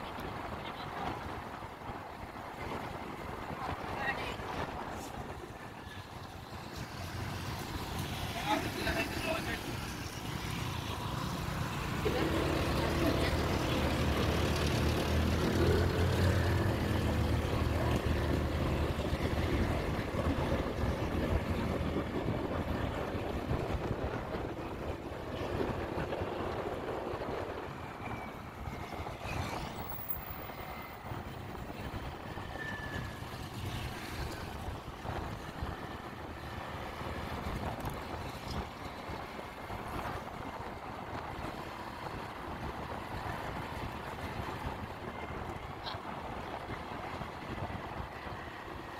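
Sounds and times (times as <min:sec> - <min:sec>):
road noise: 0:00.0 - 0:48.9
motorcycle engine: 0:09.7 - 0:21.5.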